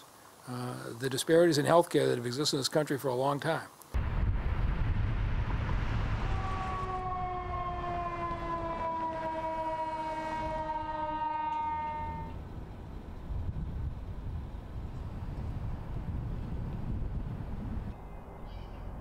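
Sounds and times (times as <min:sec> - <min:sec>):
city traffic rumble: 0:04.0 - 0:19.0
ambulance siren falling tone: 0:05.3 - 0:12.4.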